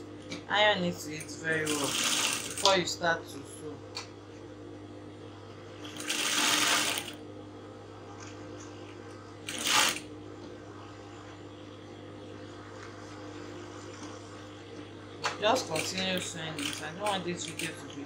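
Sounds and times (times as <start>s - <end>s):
sewing machine stitching: 1.7s - 2.7s, 6.0s - 7.2s, 9.5s - 10.0s, 16.6s - 17.8s.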